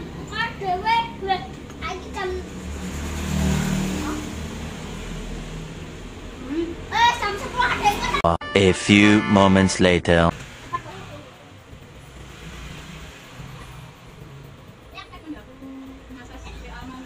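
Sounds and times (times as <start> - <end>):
children talking and calling: 0.1 - 3.0, 3.8 - 4.5, 6.2 - 9.4, 10.6 - 12.2, 13.3 - 17.0.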